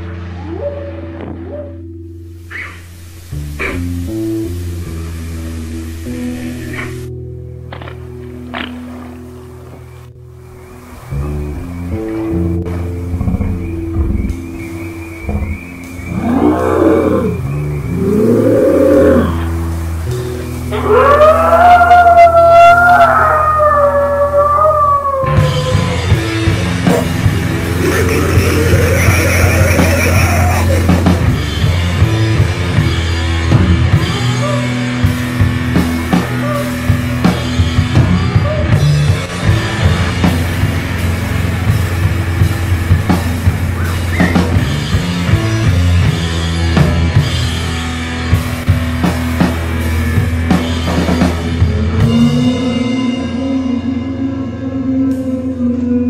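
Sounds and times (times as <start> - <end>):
dark music with low drone: 0.0 - 56.0
long howls: 0.3 - 1.8, 16.0 - 19.5, 20.7 - 30.9.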